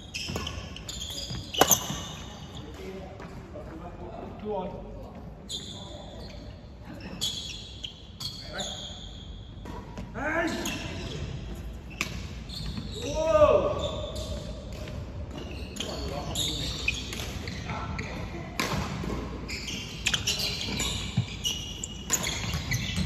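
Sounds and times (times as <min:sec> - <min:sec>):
shoes squeaking on wooden floor: 0:00.0 - 0:03.9, 0:10.2 - 0:14.6, 0:15.3 - 0:18.5, 0:19.4 - 0:23.0.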